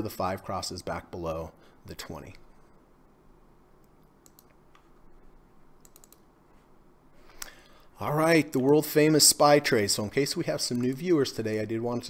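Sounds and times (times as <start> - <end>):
low room hum: 0.0 - 12.0
keyboard keystrokes and clicks: 3.8 - 5.0, 5.8 - 6.3.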